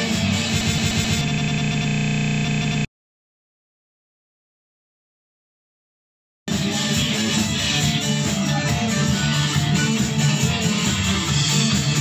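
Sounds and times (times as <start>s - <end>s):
rock band with electric guitar: 0.0s - 1.8s, 6.5s - 12.0s
steady buzzing drone: 0.3s - 2.9s.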